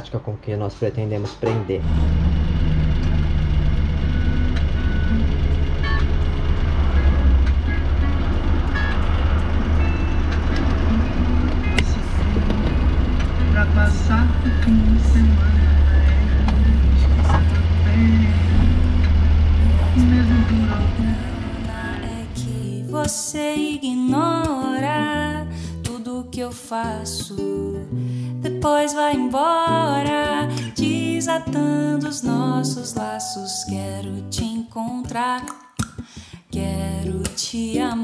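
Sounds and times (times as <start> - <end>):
vehicle engine and road noise: 1.7 - 22.8
music playing: 1.8 - 25.9.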